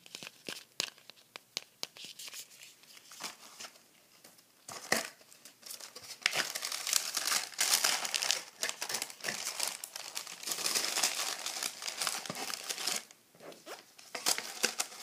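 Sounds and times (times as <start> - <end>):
tissue paper crinkling: 4.8 - 15.0.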